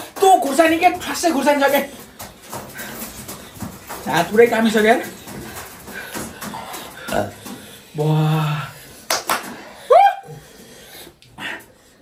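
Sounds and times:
person yelping: 0:09.9 - 0:10.4.

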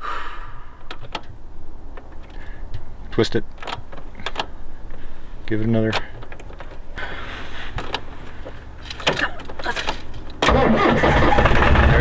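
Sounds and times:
breathy hiss: 0:00.0 - 0:00.8.

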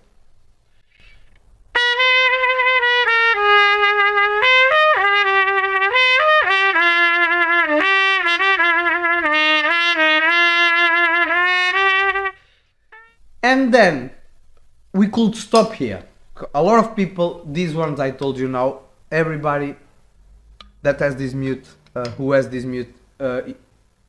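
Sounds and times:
muted trumpet melody: 0:01.7 - 0:12.4.

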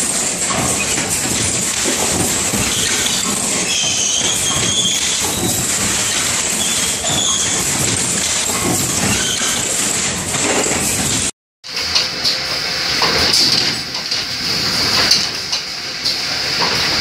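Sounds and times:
machine clattering and rattling: 0:00.0 - 0:17.0
high-pitched machine squeals: 0:02.7 - 0:07.6, 0:09.1 - 0:09.7.

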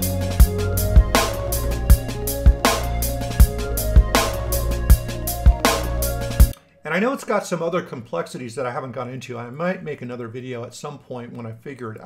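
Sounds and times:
sustained bass: 0:00.0 - 0:06.5
synth lines: 0:00.0 - 0:06.5
electronic music: 0:00.0 - 0:06.6.

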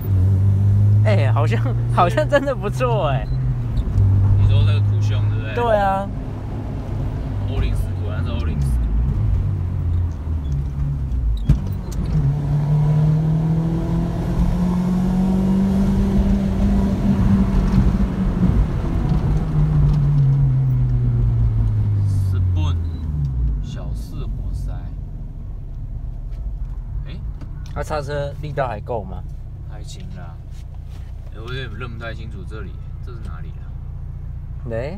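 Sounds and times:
car engine revving: 0:00.0 - 0:34.9.

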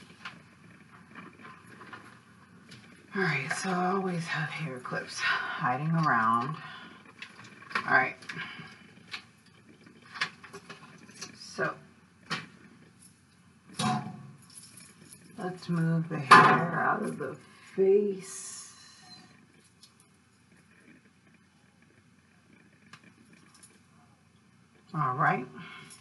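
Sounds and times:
faint rustling: 0:00.0 - 0:24.9.

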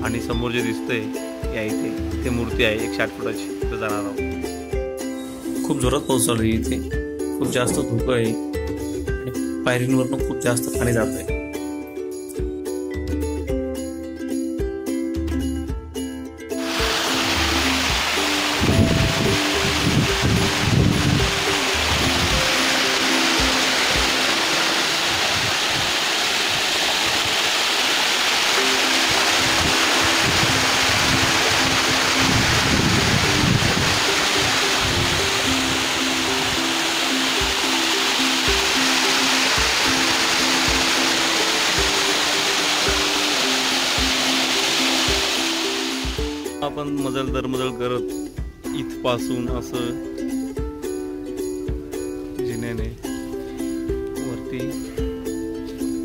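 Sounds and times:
simple background melody: 0:00.0 - 0:25.5, 0:28.5 - 0:56.0
rainwater cascading down stone stairs: 0:16.6 - 0:46.4.

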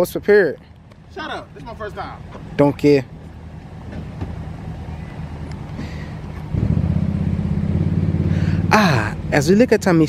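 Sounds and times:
vehicle engine idling: 0:00.6 - 0:10.0.

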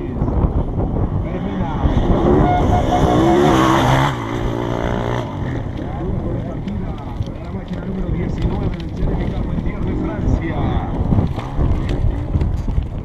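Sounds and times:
motorcycle passing by: 0:01.3 - 0:06.1.

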